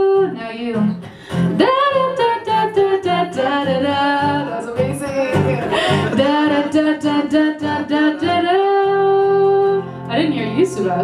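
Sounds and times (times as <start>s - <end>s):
strummed guitar: 0.0s - 11.0s
people singing wordless phrases: 4.2s - 9.4s.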